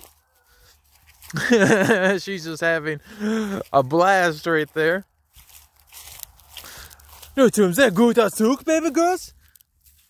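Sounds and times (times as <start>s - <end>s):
footsteps crunching through dry leaves: 0.0s - 10.0s
small crackles: 4.7s - 10.0s.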